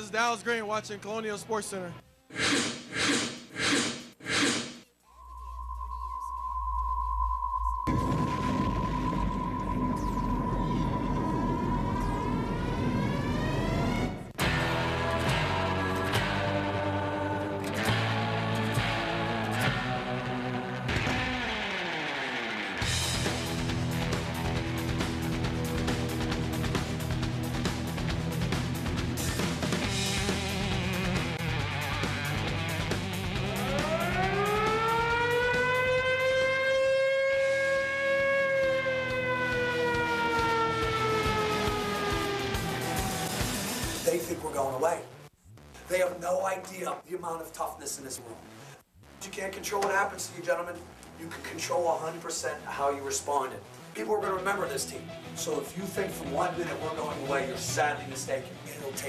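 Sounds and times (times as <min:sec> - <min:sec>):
background music: 0:00.0 - 0:04.4, 0:07.9 - 0:59.0
rising electronic sweep: 0:02.5 - 0:14.3, 0:33.0 - 0:45.8
siren-like wail: 0:05.0 - 0:14.4, 0:33.3 - 0:44.1
dense low rumble: 0:05.1 - 0:14.3.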